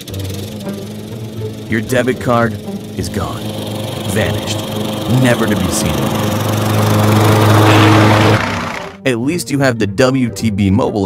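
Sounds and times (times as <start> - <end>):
lawn mower engine droning: 0.0 - 9.1.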